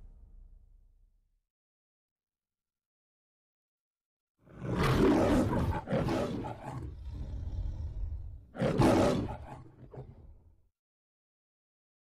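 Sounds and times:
lion roaring: 4.5 - 10.4
lion growling: 4.5 - 10.5.

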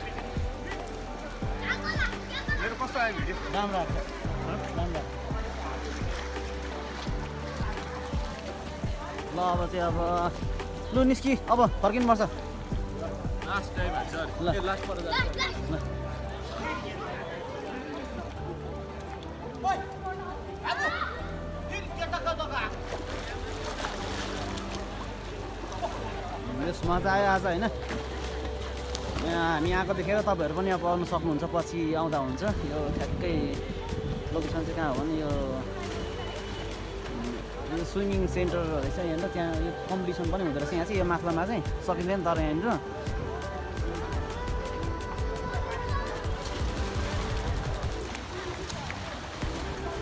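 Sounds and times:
background music: 0.0 - 50.0
people calling and chattering: 0.0 - 50.0
pool water splashing: 0.0 - 50.0.

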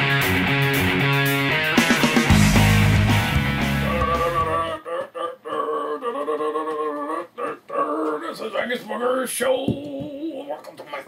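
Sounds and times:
rock guitar music: 0.0 - 4.6.

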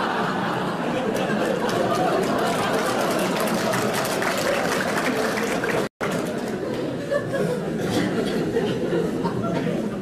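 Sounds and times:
audience laughing and murmuring: 0.0 - 10.0.

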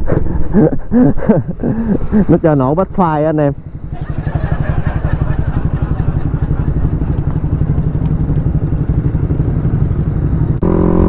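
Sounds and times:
motorcycle engine accelerating: 3.6 - 11.0.

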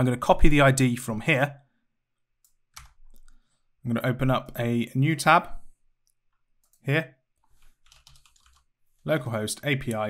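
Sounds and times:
typing on computer keyboard: 2.8 - 3.3, 7.8 - 8.7.

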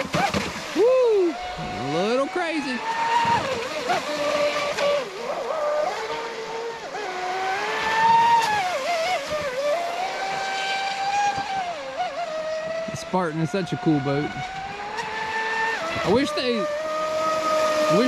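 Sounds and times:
rc boat motor whining: 0.0 - 18.0.

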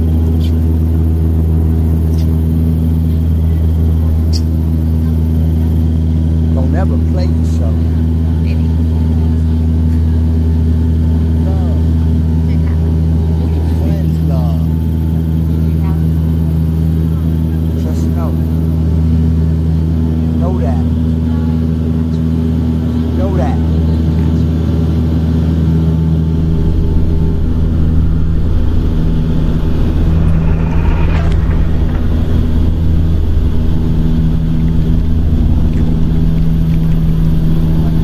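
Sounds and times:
propeller and engine hum: 0.0 - 38.0.

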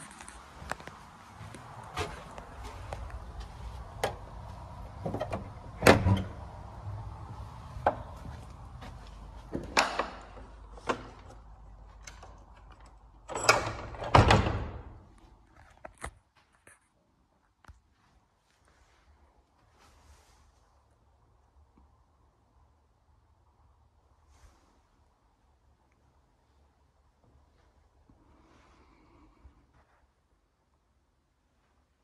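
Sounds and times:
door shutting with heavy thud: 5.0 - 6.5, 13.4 - 15.0
door latch clicks: 9.6 - 11.4.

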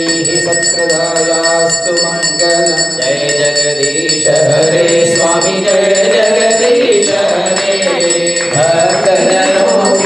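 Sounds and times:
man chanting through loudspeaker: 0.0 - 10.0.

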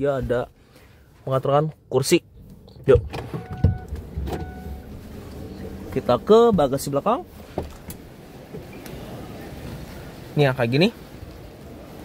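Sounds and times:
short electronic beeps: 3.4 - 4.9.

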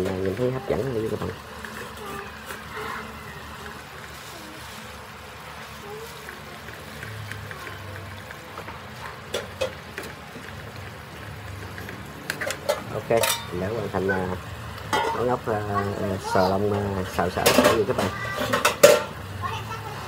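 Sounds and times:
shellfish sizzling in a wok: 0.0 - 20.0
spoon scraping and clinking on pan: 12.3 - 13.5.

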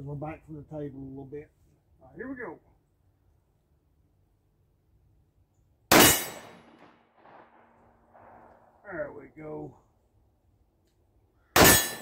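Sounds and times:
pistol shot: 5.9 - 8.5, 11.6 - 12.0.

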